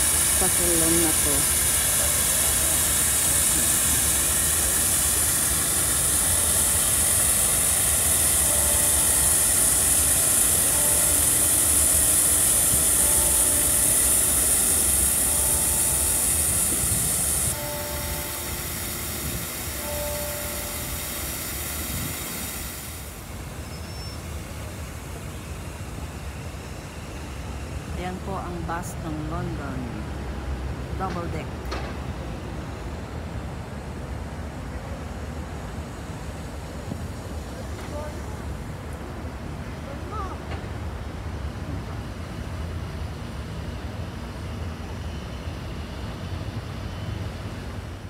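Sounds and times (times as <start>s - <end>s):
steady high hiss: 0.0s - 30.8s
low rumble of city noise: 0.0s - 48.0s.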